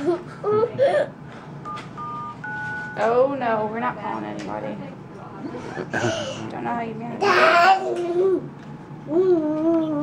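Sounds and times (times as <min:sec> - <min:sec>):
phone keypad dialing beeps: 0:01.6 - 0:03.0.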